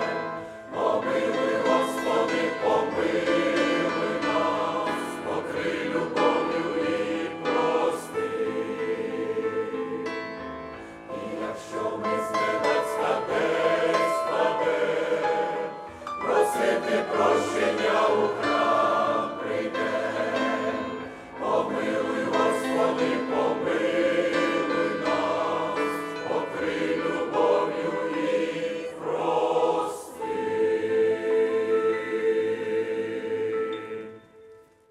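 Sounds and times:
mixed choir singing a hymn: 0:00.0 - 0:34.5.

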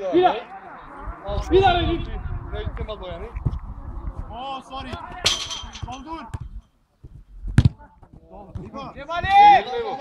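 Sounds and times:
football hitting wire fence: 0:04.9 - 0:06.5.

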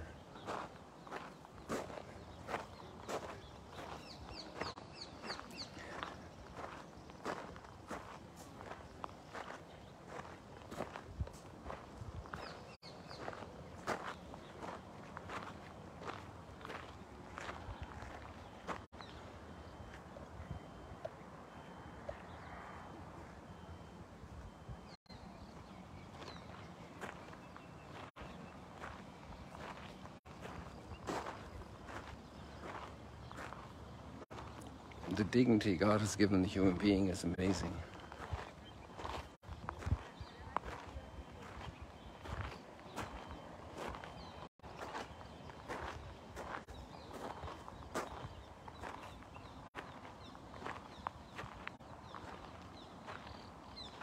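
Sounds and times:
bird chirping: 0:00.0 - 0:11.0, 0:11.7 - 0:54.0
footsteps on gravelly sand: 0:00.0 - 0:20.8, 0:24.8 - 0:54.0.

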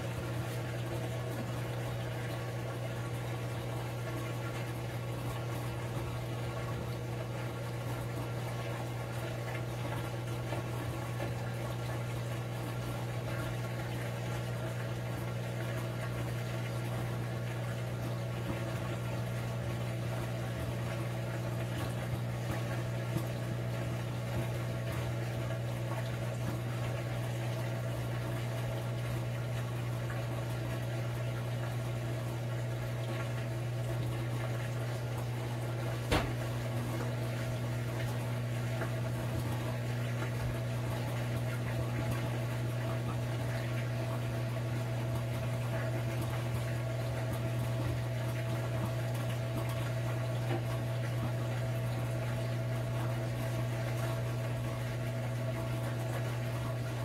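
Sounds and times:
washer drain pump humming: 0:00.0 - 0:57.0.

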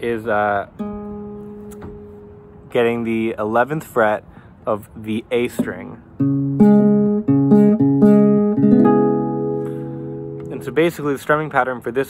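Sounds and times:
acoustic guitar chord strikes: 0:00.8 - 0:02.7, 0:06.2 - 0:10.7.

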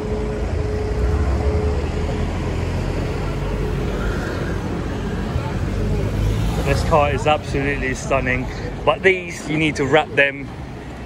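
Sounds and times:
car passing with tyre noise: 0:00.0 - 0:11.0
street traffic rumbling: 0:00.0 - 0:11.0.

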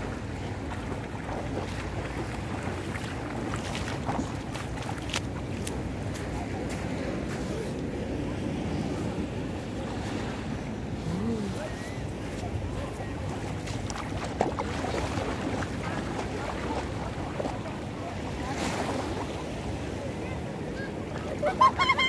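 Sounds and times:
waves washing on shore: 0:00.0 - 0:22.0.

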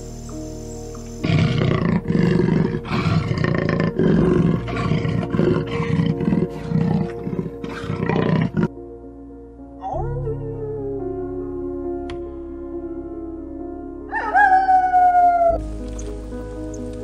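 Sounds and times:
soft background music: 0:00.0 - 0:17.0
leopard roaring: 0:01.2 - 0:08.7.

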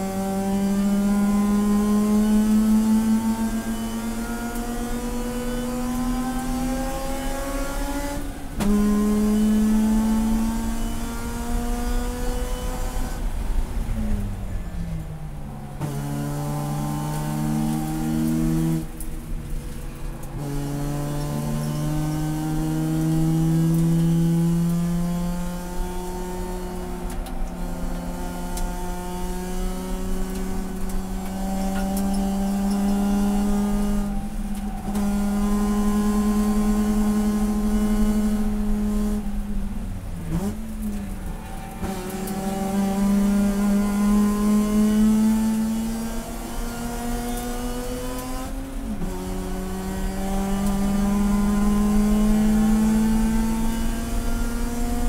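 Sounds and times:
race car engine accelerating: 0:00.0 - 0:55.0.

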